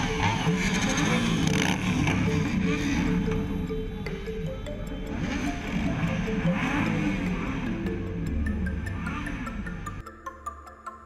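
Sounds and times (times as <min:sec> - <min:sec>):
motorcycle engines revving: 0:00.0 - 0:10.0
background music: 0:00.0 - 0:11.0.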